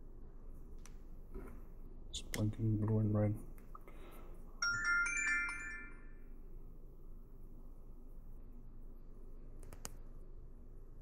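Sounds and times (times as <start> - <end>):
electronic chime: 4.6 - 6.3.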